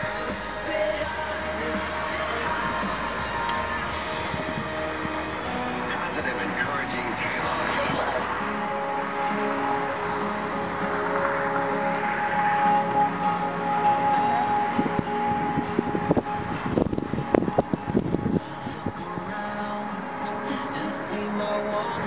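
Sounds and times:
music from car stereo: 0.0s - 22.0s.

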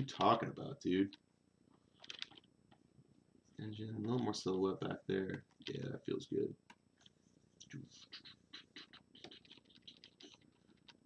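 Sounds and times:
stylus scratching on glass: 7.9s - 10.7s.

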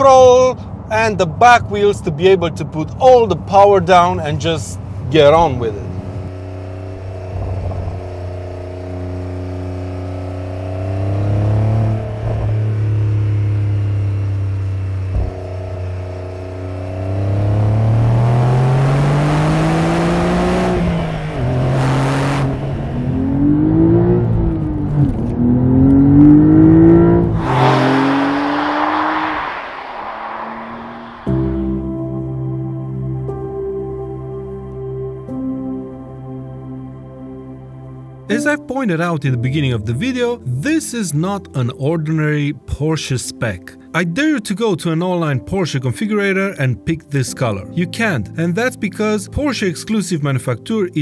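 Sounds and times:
sports car engine revving: 4.8s - 32.0s.

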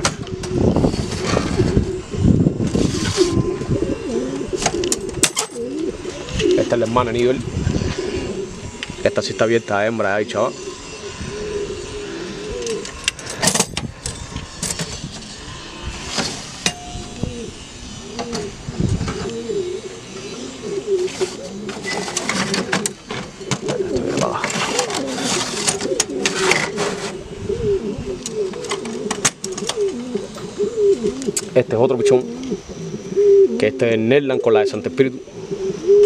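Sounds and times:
pigeons cooing: 0.0s - 36.0s.

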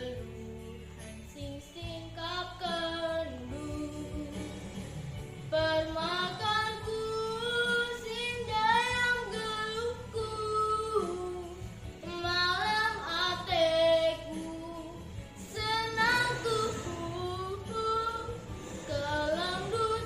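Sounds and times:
girl singing: 0.0s - 4.5s, 5.5s - 20.0s.

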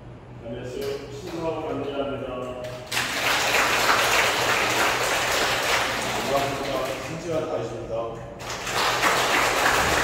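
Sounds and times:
audience applauding: 2.9s - 7.1s, 8.4s - 10.0s.

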